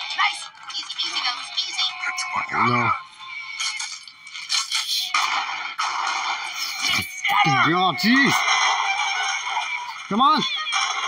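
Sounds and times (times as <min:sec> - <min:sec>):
cartoon soundtrack music: 0:01.9 - 0:11.0.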